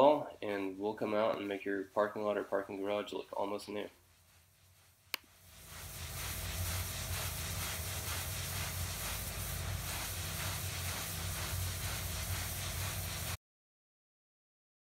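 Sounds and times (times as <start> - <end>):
pressure washer spraying concrete: 5.2 - 13.4.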